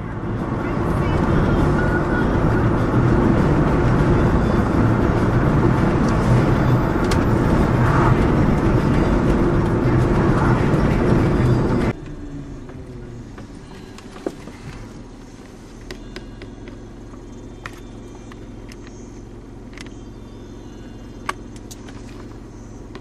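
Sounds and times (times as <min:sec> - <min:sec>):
car road and engine noise: 0:00.0 - 0:23.0.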